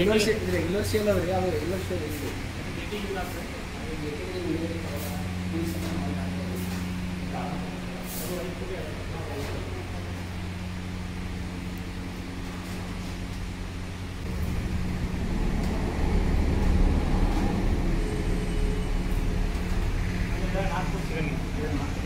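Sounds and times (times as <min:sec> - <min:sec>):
low motor hum: 0:00.0 - 0:22.0
deep rumble: 0:14.1 - 0:21.0.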